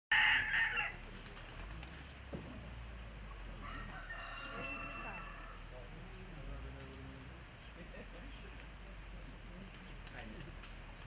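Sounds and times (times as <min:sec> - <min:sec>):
rooster crowing: 0:00.1 - 0:01.0, 0:03.6 - 0:05.7.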